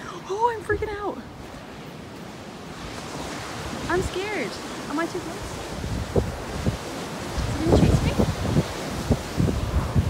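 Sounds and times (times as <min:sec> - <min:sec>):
surf washing onto beach: 0:00.0 - 0:10.0
wind on microphone: 0:02.7 - 0:10.0.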